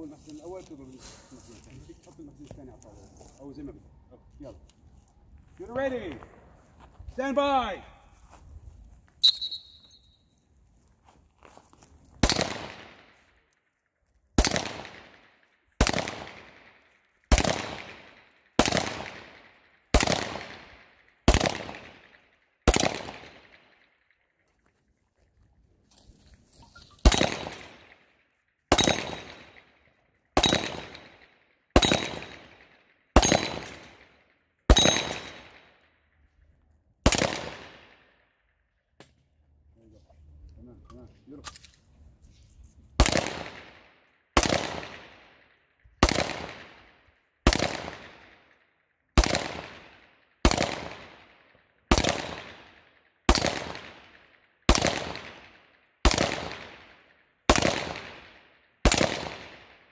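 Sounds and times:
pistol shots with echo: 12.2 - 13.2, 14.4 - 23.9, 27.0 - 28.1, 28.7 - 29.7, 30.4 - 35.8, 37.0 - 38.1, 43.0 - 45.4, 46.0 - 48.5, 49.2 - 59.9.

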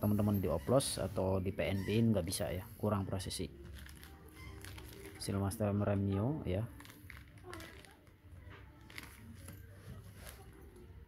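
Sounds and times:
plastic bags rustling: 3.5 - 10.9.

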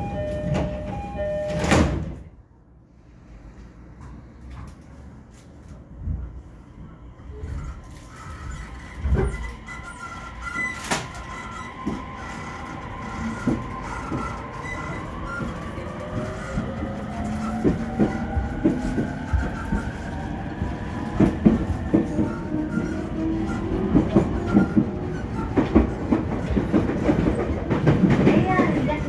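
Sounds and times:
train motor whine: 7.6 - 20.1.

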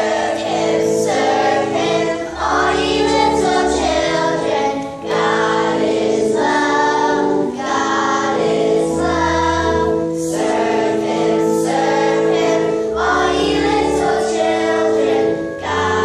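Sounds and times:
children's choir singing: 0.0 - 16.0
instrumental held chords: 0.0 - 16.0.

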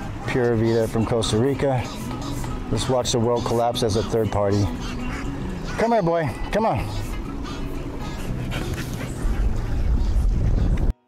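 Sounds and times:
outdoor noise rush: 0.0 - 11.0.

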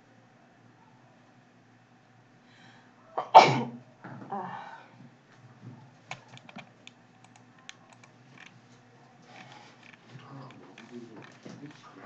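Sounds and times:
person coughing: 3.2 - 3.8
computer keyboard and mouse clicks: 6.1 - 8.6.

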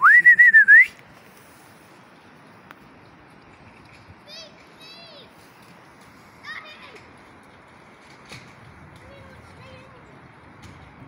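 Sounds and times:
river and wind hiss: 0.0 - 11.0.

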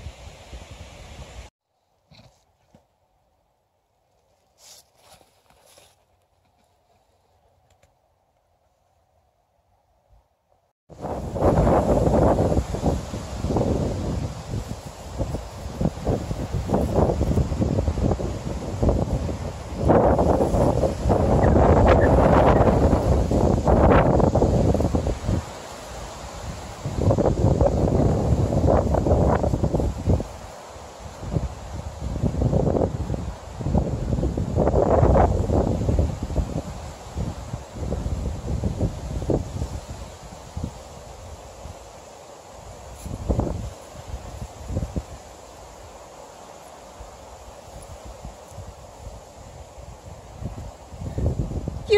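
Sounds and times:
wind buffeting microphone: 10.9 - 41.8, 42.6 - 45.2, 47.8 - 51.9.

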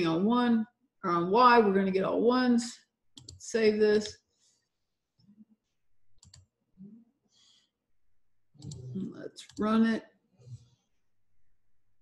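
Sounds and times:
computer mouse clicks: 3.2 - 3.4, 6.2 - 6.5, 8.6 - 9.8.

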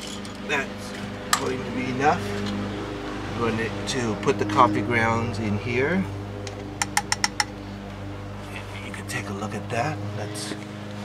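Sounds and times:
steady low hum: 0.0 - 11.0
light metallic taps: 6.4 - 7.6.

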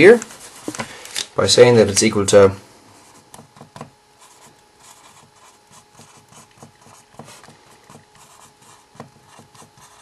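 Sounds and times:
marker pen scratching on whiteboard: 3.0 - 10.0.

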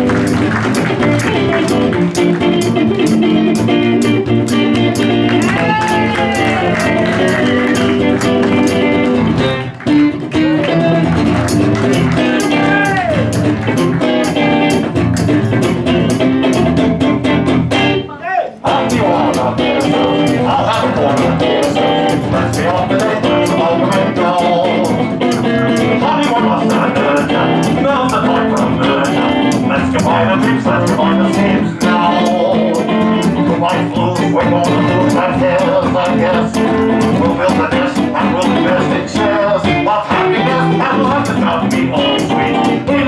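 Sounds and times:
ticking shaker rhythm: 0.0 - 18.0, 18.6 - 43.0
acoustic guitar: 0.0 - 43.0.

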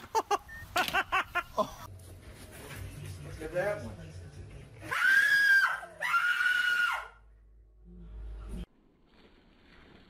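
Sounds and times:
woman screaming in fright: 4.9 - 7.2.

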